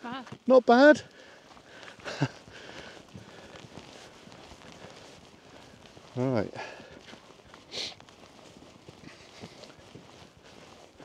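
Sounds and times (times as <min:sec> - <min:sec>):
footsteps on tarmac: 0:00.0 - 0:11.0.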